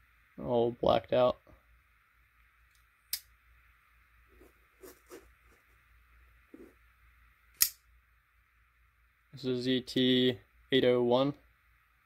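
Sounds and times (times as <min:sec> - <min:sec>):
faint handling sounds: 0:04.2 - 0:05.9, 0:06.5 - 0:06.8.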